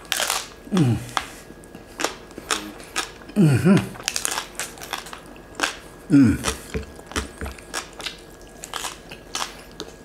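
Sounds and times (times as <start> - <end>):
chewing crispy pork crunches: 0.0 - 10.0.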